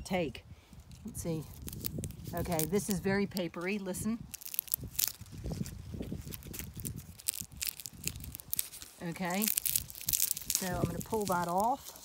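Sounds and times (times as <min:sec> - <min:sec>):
seed pod crackling and rustling: 0:00.7 - 0:12.0.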